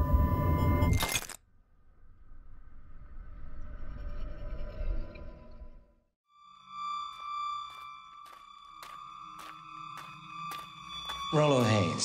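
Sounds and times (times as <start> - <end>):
high electronic tone with ticks: 6.4 - 12.0.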